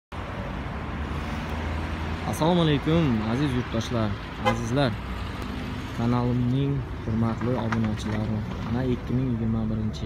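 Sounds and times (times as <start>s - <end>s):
cars driving by: 0.1s - 10.0s.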